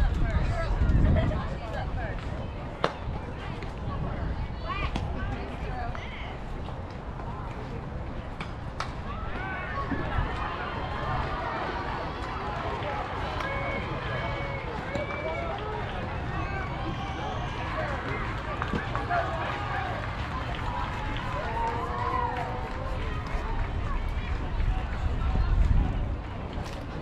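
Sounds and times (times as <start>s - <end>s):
wind on microphone rumble: 0.0s - 14.4s, 20.6s - 27.0s.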